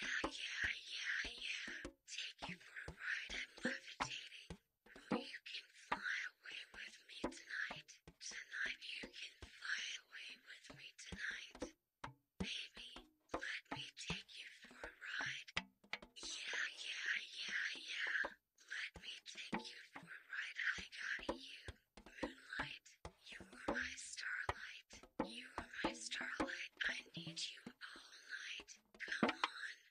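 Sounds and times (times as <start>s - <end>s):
person whispering close to microphone: 0.0s - 11.6s, 12.4s - 15.6s, 16.2s - 29.9s.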